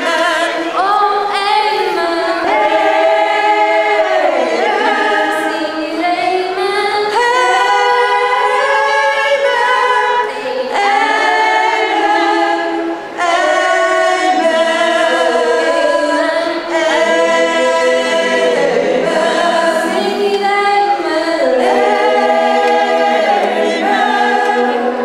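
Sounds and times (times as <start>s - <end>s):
choir singing a cappella: 0.0s - 25.0s.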